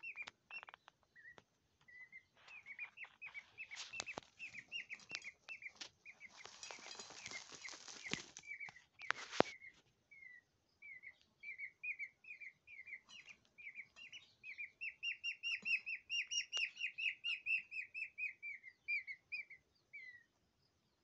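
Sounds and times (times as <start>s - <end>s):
peafowl chick peeping: 0.0s - 21.0s.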